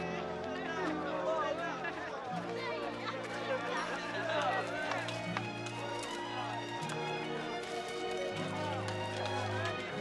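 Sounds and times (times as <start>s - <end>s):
crowd shouting and cheering: 0.0s - 10.0s
running footsteps: 0.0s - 10.0s.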